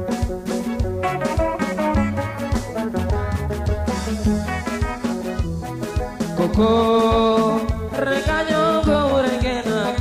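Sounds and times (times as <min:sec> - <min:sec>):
bass: 0:00.0 - 0:10.0
drums keeping quick beat: 0:00.0 - 0:10.0
electric keyboard: 0:00.0 - 0:10.0.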